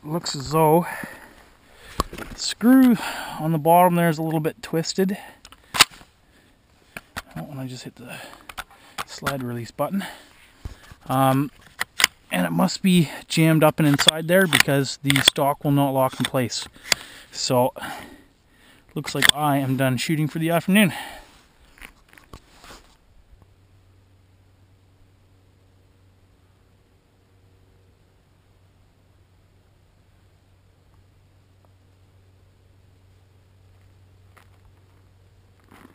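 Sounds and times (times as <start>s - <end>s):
rifle handling clicks and knocks: 6.9s - 7.5s, 8.2s - 9.5s, 10.6s - 12.3s, 13.8s - 15.4s, 16.1s - 17.1s, 18.9s - 19.4s
sharp metallic rifle click: 13.9s - 15.4s.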